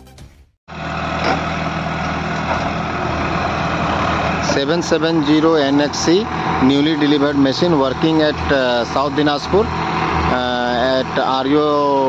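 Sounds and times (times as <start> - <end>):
music: 0.0 - 0.6
diesel engine running: 0.7 - 12.0.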